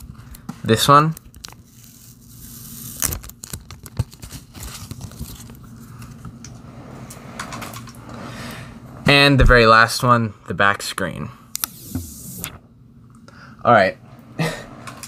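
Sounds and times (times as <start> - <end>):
plastic film peeling: 1.2 - 5.7.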